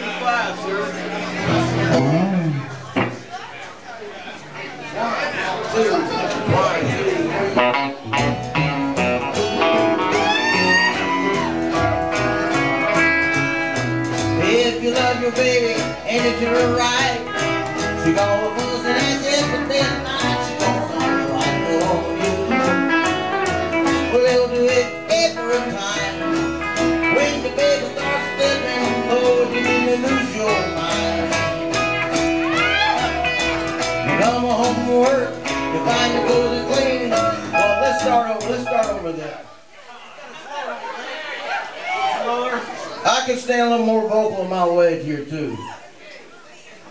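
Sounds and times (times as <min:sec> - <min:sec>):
country band playing: 0:00.0 - 0:39.5, 0:40.8 - 0:45.5
plucked upright bass: 0:01.4 - 0:03.4, 0:06.4 - 0:39.2.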